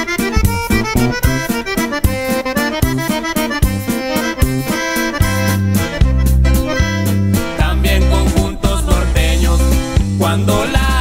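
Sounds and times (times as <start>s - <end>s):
accordion melody: 0.0s - 11.0s
deep bass notes: 0.0s - 11.0s
strummed and drummed rhythm: 0.0s - 11.0s.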